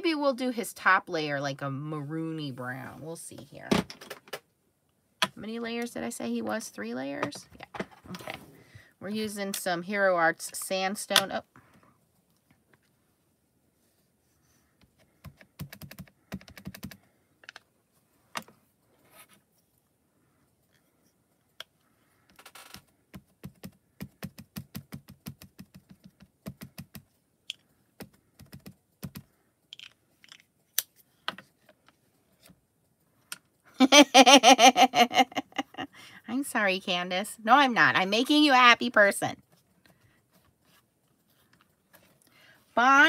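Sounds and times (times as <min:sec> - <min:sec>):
loud laughter: 0:33.8 - 0:35.8.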